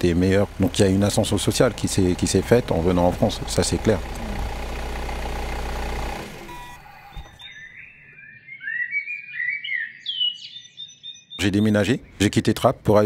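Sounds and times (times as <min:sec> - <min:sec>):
engine and traffic rumble: 0:00.0 - 0:07.5
birds chirping: 0:06.3 - 0:13.0.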